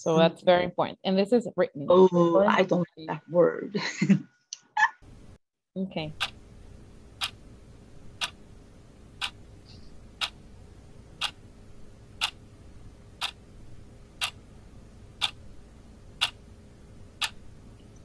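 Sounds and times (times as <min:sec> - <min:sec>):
faint steady hum: 0:05.0 - 0:18.0
stopwatch ticking: 0:06.1 - 0:06.4, 0:07.2 - 0:07.4, 0:08.2 - 0:08.4, 0:10.2 - 0:10.4, 0:11.2 - 0:11.4, 0:12.2 - 0:12.4, 0:13.2 - 0:13.4, 0:14.2 - 0:14.4, 0:15.2 - 0:15.4, 0:16.2 - 0:16.4, 0:17.2 - 0:17.4.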